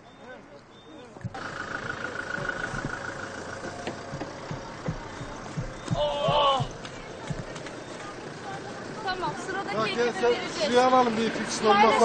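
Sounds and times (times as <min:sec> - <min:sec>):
vehicle engine idling: 0:00.0 - 0:12.0
low thumps: 0:02.2 - 0:07.8.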